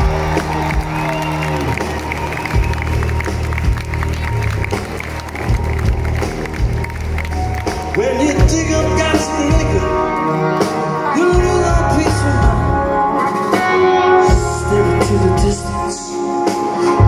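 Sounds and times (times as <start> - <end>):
crowd cheering and applause: 0.0 - 15.3
live rock band: 0.0 - 17.0.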